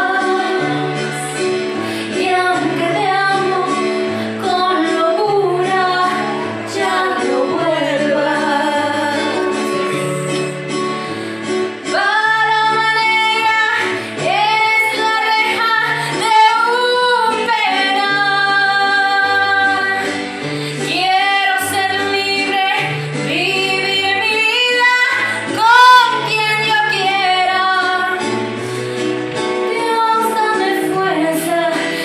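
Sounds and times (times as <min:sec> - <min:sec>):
woman singing with vibrato: 0:00.0 - 0:10.8, 0:11.5 - 0:28.6, 0:29.6 - 0:32.0.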